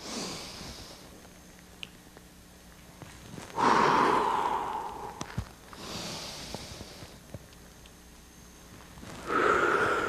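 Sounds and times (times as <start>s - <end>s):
person breathing deeply: 3.5s - 7.1s, 9.2s - 10.0s.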